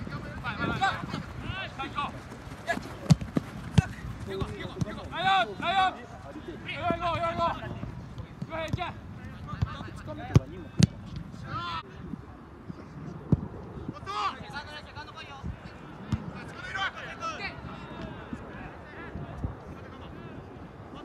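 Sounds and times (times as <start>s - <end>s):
soccer ball kick thuds: 0.0s - 5.3s, 6.7s - 11.4s, 13.3s - 13.5s, 16.0s - 16.4s
players shouting calls: 0.0s - 11.8s, 14.0s - 19.1s.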